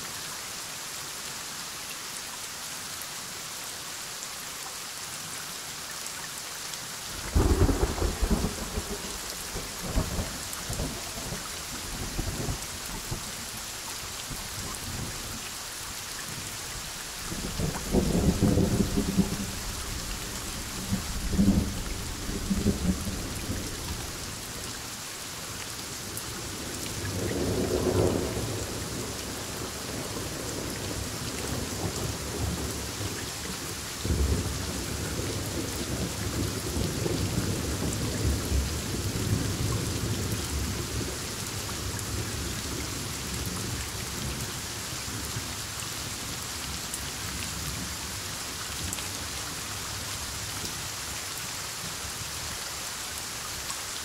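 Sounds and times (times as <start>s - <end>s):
rain falling: 0.0s - 54.0s
thunder rumbling: 7.3s - 12.6s, 17.3s - 24.2s.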